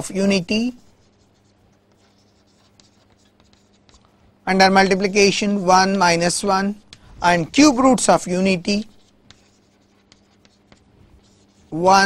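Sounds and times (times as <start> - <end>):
chalk scratching on chalkboard: 0.0 - 4.1, 4.8 - 12.0
faint low hum: 0.0 - 12.0.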